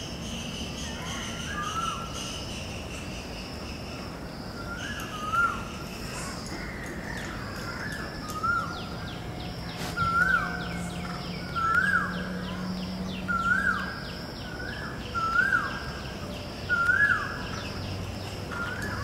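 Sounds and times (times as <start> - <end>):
bird call rising and falling: 6.7 - 16.0.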